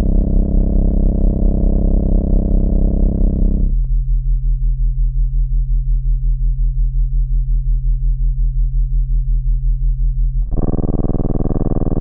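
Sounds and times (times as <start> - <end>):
pulsing low electronic tones: 0.0 - 4.4, 10.4 - 12.0.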